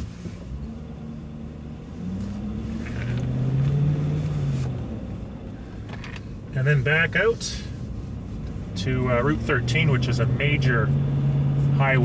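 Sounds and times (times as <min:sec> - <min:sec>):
car engine: 0:00.0 - 0:12.0
road rumble: 0:00.0 - 0:12.0.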